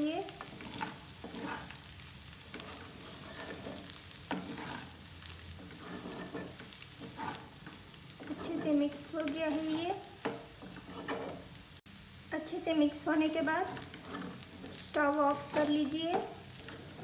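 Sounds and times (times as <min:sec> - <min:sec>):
spatula stirring noodles: 0:00.0 - 0:11.9, 0:13.1 - 0:17.0
faint sizzle: 0:00.0 - 0:17.0.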